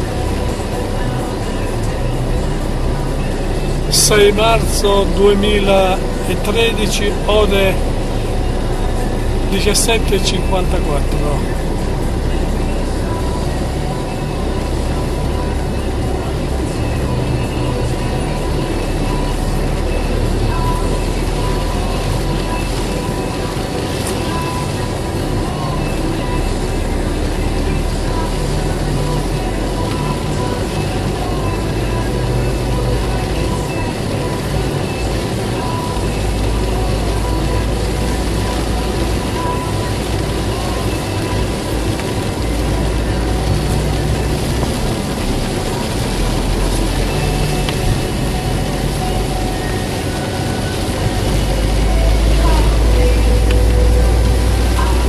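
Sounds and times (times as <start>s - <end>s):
car engine rumble: 0.0s - 55.0s.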